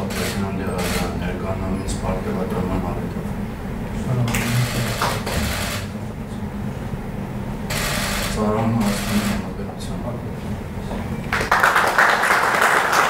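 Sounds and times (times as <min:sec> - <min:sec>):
low conversation: 0:00.0 - 0:05.4, 0:08.2 - 0:11.0.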